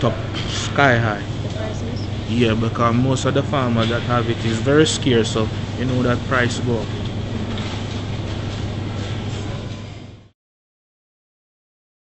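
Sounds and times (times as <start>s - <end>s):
constant low hum: 0.0s - 10.3s.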